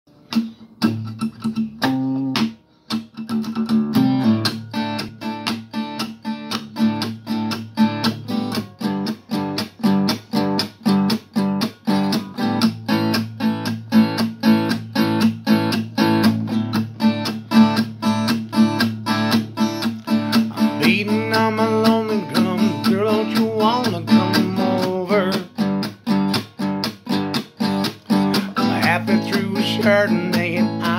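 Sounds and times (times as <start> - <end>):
acoustic guitar strumming: 0.1 - 30.9.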